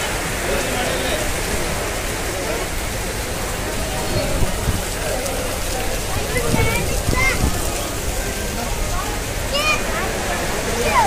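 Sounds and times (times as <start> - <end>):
heavy rain falling: 0.0 - 11.0
water pouring off roof: 0.0 - 11.0.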